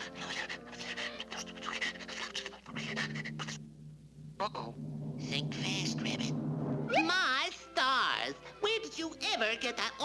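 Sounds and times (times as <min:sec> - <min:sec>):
soft low music notes: 0:00.0 - 0:10.0.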